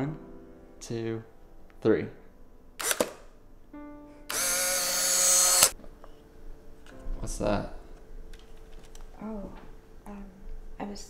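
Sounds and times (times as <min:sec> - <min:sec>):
camera motor whirring: 0:02.8 - 0:03.2, 0:04.3 - 0:05.8
camera shutter click: 0:02.8 - 0:03.3, 0:04.3 - 0:05.8.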